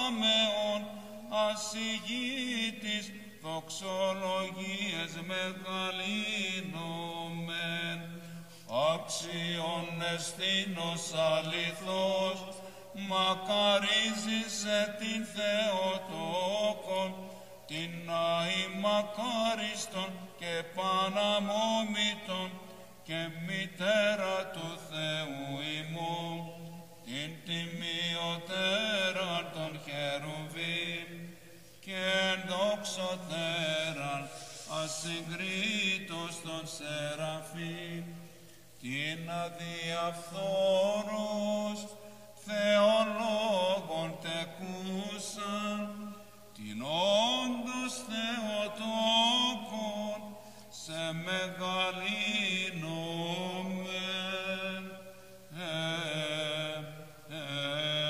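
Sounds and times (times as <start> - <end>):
man chanting a hymn: 0.0 - 58.0.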